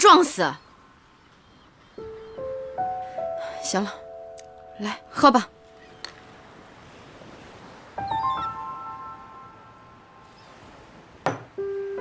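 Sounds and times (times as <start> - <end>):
soft background music: 1.8 - 6.9, 7.8 - 12.0.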